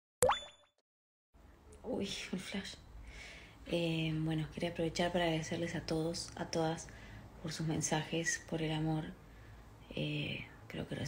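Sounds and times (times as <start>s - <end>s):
upward-gliding plop with ringing: 0.2s - 0.7s.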